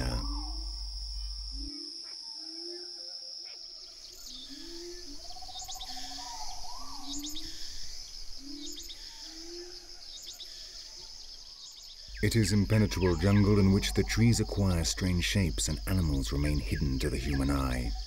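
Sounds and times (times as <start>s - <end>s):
high-pitched insect drone: 0.0s - 18.0s.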